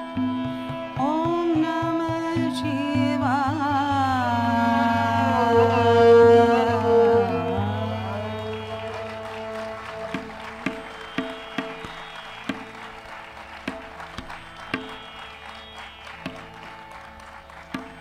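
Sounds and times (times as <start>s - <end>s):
tabla strokes: 0.0s - 18.0s
steady drone: 4.2s - 12.4s.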